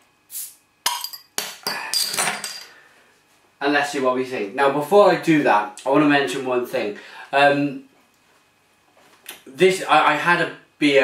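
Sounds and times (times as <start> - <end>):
beer bottle opening hiss: 0.3 - 0.6
bottle opener metallic clinks: 0.8 - 2.6.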